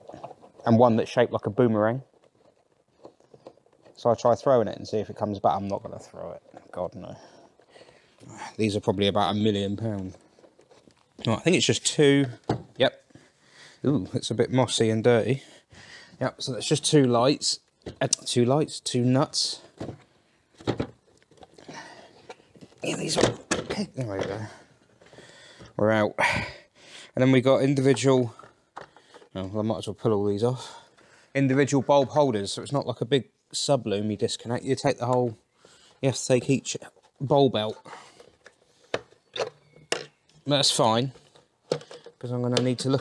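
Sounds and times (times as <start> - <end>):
small clicks and rustles: 0.0 - 4.6, 9.5 - 11.5
plastic handling noises: 0.0 - 15.3, 16.1 - 26.1, 27.3 - 33.1, 34.2 - 43.0.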